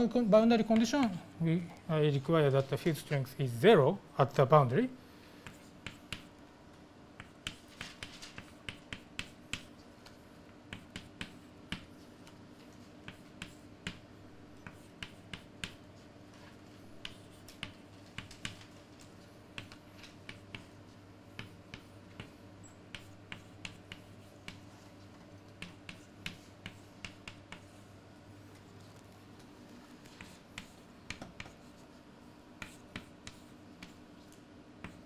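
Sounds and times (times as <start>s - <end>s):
faint steady hum: 0.0s - 35.0s
chalk tapping on blackboard: 0.7s - 0.9s, 5.4s - 6.4s, 7.2s - 9.8s, 10.7s - 12.1s, 13.0s - 15.9s, 17.0s - 18.6s, 19.5s - 24.7s, 25.6s - 27.8s, 30.0s - 31.8s, 32.6s - 34.0s, 34.8s - 35.0s.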